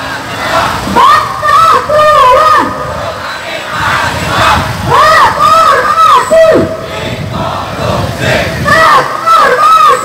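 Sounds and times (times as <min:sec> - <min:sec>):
crowd shouting together: 0:00.0 - 0:10.0.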